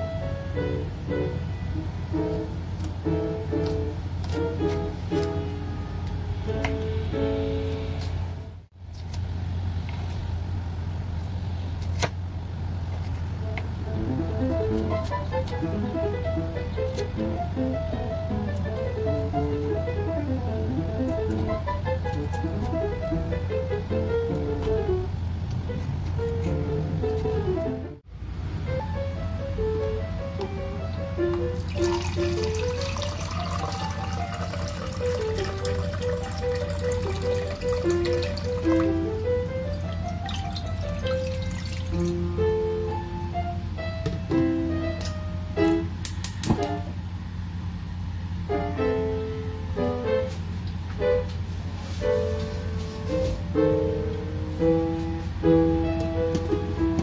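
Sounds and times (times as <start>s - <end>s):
water pouring into a pot: 31.6s - 38.9s, 39.9s - 42.2s.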